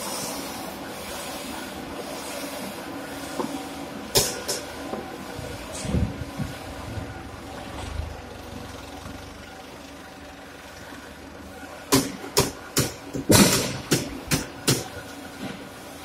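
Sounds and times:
machinery humming: 0:00.0 - 0:16.0.

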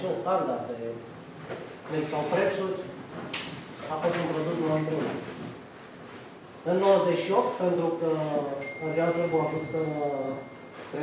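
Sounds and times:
man speaking: 0:01.9 - 0:03.0, 0:06.6 - 0:11.0.

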